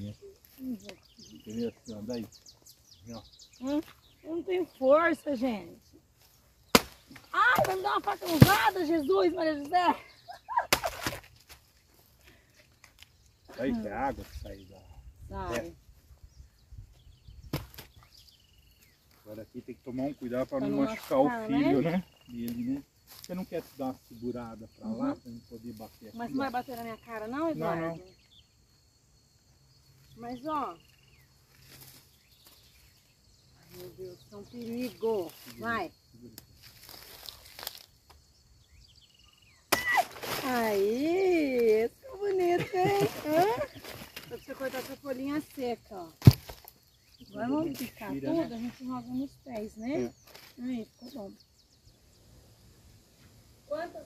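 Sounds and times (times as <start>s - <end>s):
leaves rustling: 0.0s - 14.8s, 18.8s - 24.7s, 30.2s - 38.1s, 39.8s - 51.4s
machete knocking plant stem: 6.7s - 7.8s, 46.2s - 46.6s
machete chopping plant trunk: 6.7s - 8.8s, 10.7s - 11.3s, 17.5s - 18.0s, 46.2s - 46.8s.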